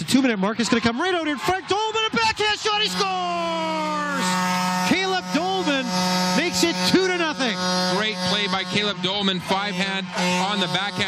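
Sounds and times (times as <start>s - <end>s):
man speaking: 0.0s - 11.0s
electrical buzz: 3.8s - 11.0s.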